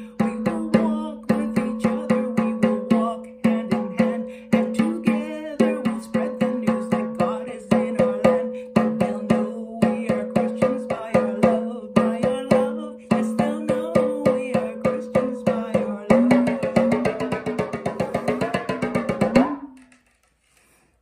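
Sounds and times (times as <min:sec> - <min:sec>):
woman singing: 0:00.0 - 0:18.5
hand drum struck with stick: 0:00.0 - 0:19.9.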